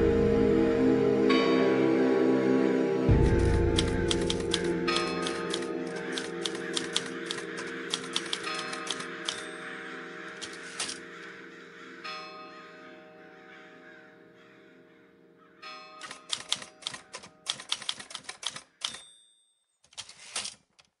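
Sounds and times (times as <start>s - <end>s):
background music: 0.0s - 17.2s
typewriter key strikes: 3.8s - 9.4s, 16.0s - 19.2s
typewriter bell ding: 18.8s - 19.7s.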